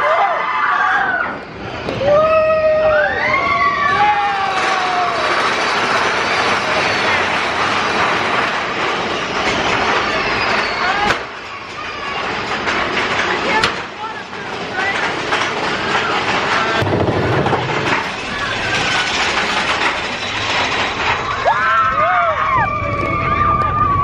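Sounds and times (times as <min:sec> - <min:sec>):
roller coaster cars rattling on track: 0:00.0 - 0:24.0
short squeals of coaster wheels: 0:00.1 - 0:13.6.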